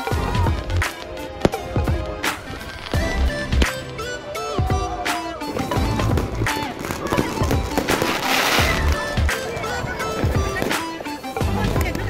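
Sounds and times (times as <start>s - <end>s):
fireworks hiss and crackle: 0.0s - 4.0s, 5.2s - 12.0s
fireworks bangs: 0.0s - 12.0s
music playing: 0.0s - 12.0s.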